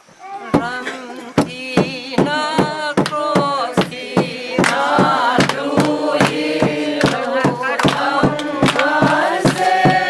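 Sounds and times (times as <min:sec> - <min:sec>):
group of voices singing: 0:00.5 - 0:10.0.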